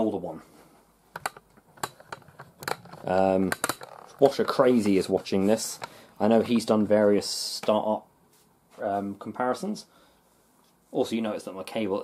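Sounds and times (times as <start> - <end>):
laptops clicking and tapping: 1.1 - 6.6.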